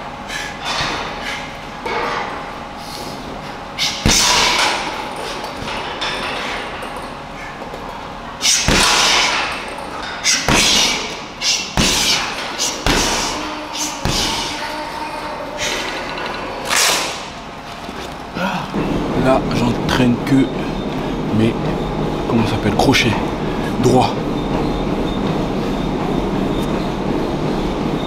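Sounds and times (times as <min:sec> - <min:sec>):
punches thudding on heavy bag: 0:04.0 - 0:04.6, 0:08.5 - 0:09.4, 0:10.3 - 0:13.4, 0:14.0 - 0:14.5.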